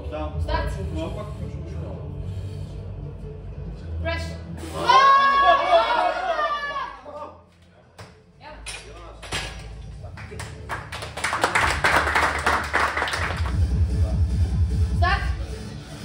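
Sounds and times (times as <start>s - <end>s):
group of people clapping: 9.2s - 13.8s
background music with a beat: 12.0s - 16.0s.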